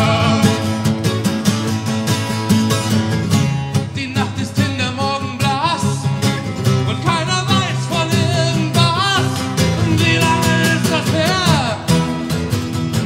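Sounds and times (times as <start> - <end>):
strummed acoustic guitars: 0.0 - 13.0.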